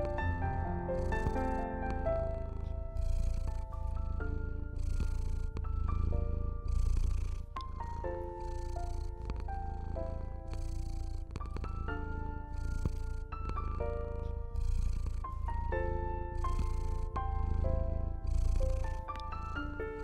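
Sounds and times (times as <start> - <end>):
cat purring: 0.0 - 20.0
soft piano music: 0.0 - 20.0.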